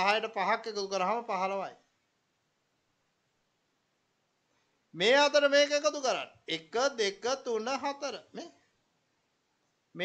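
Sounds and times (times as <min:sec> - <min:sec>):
man speaking: 0:00.0 - 0:01.8, 0:04.9 - 0:08.7.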